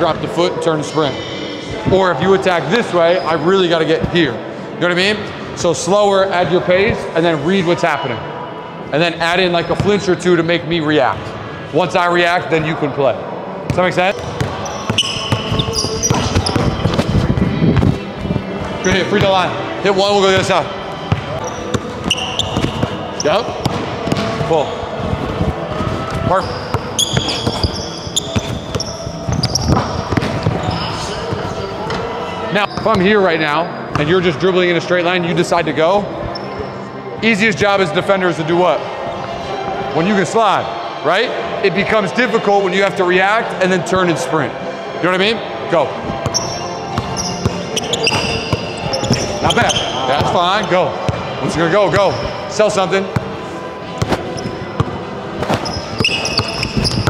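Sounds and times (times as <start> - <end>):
sneakers squeaking: 9.4 - 10.2, 13.7 - 34.4, 36.2 - 37.2, 46.0 - 57.0.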